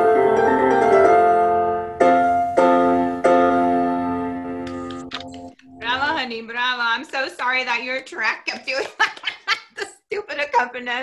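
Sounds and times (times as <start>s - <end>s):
piano chords: 0.0s - 6.5s.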